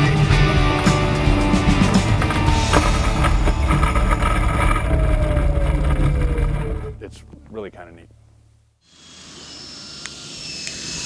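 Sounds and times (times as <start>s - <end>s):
electric motor and propeller: 1.9s - 7.0s, 8.8s - 11.0s.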